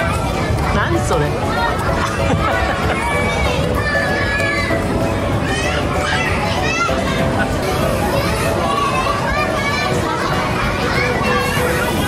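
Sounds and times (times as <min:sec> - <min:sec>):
children shouting and squealing: 0:00.0 - 0:12.0.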